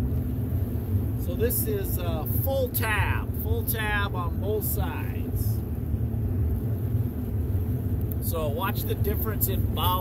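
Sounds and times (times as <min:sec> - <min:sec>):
boat engine low rumble: 0:00.0 - 0:10.0.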